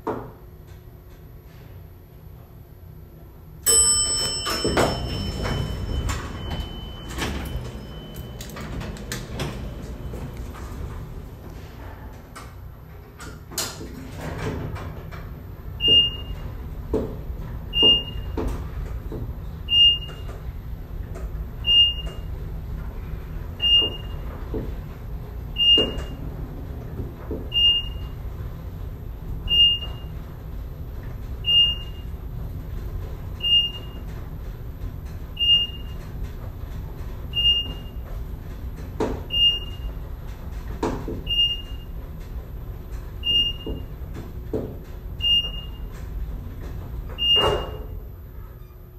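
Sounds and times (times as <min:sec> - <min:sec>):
elevator low rumble: 0:00.4 - 0:48.9.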